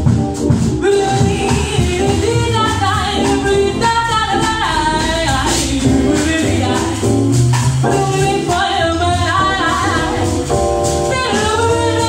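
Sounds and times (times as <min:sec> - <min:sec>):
drum kit: 0:00.0 - 0:12.0
woman singing: 0:00.8 - 0:07.0, 0:07.9 - 0:10.4, 0:11.1 - 0:12.0.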